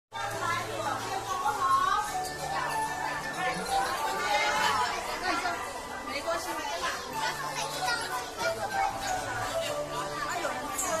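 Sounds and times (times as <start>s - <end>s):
children chattering and calling out: 0.2s - 11.0s.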